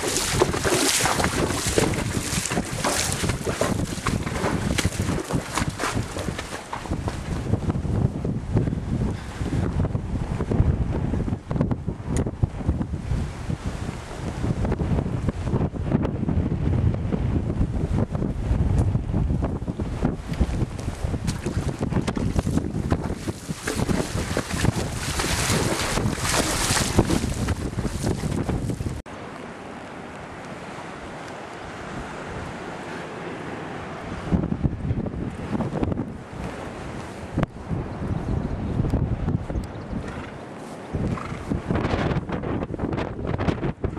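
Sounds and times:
surf washing: 0.0 - 7.7, 20.4 - 37.8
wind buffeting microphone: 0.0 - 29.1, 34.0 - 43.9.

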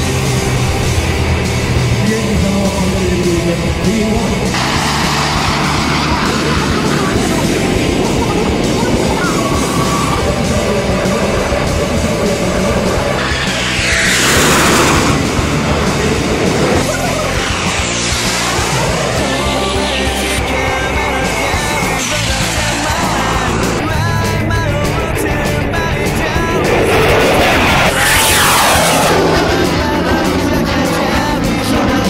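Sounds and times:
fighter jets passing overhead: 0.0 - 32.0
loud rock music: 0.0 - 32.0.

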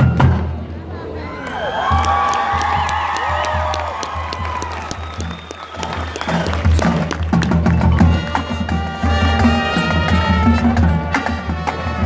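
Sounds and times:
audience applause and cheering: 1.2 - 8.4
marching band playing: 1.8 - 12.0.

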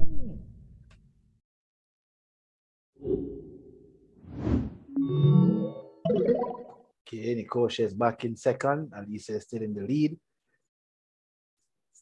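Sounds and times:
whoosh: 3.0 - 4.9.

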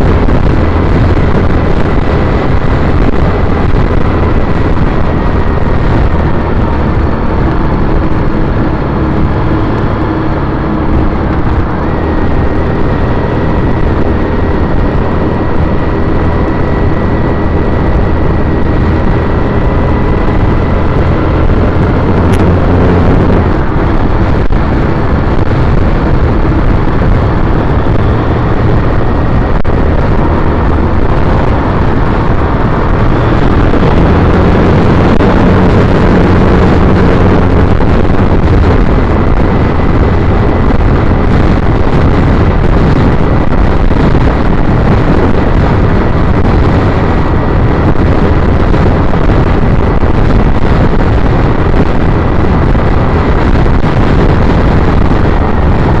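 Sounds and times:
motorcycle engine running: 0.0 - 56.0.

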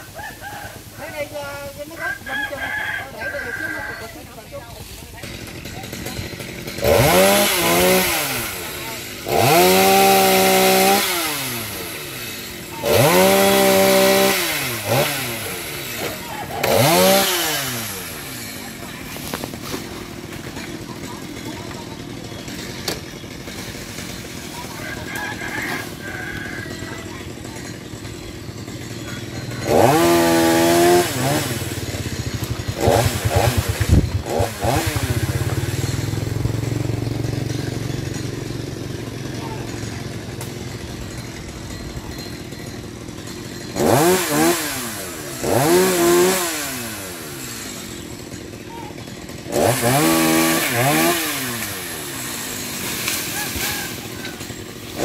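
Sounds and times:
chainsaw idling and revving: 0.0 - 55.0.

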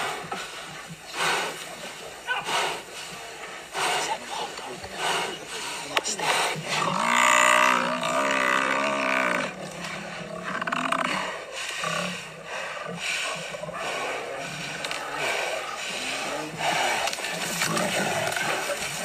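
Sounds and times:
animal cries and growls: 0.0 - 19.0.

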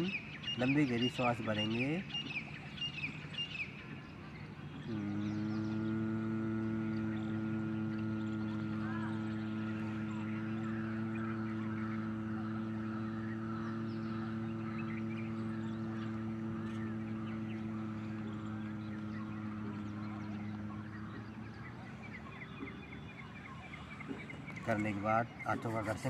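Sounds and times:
faint bird chirps: 0.0 - 26.0
man's low nasal hum: 4.8 - 21.5.

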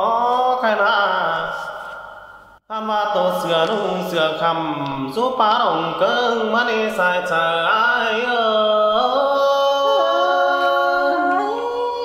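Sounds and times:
unaccompanied voice singing folk melody: 2.7 - 12.0.

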